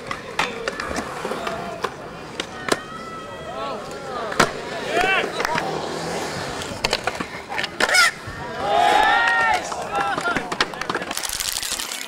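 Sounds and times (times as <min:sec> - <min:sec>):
skateboard clacking on concrete: 0:00.0 - 0:03.0, 0:03.8 - 0:12.0
skateboard wheels rolling on concrete: 0:00.0 - 0:12.0
people calling out: 0:07.8 - 0:10.8.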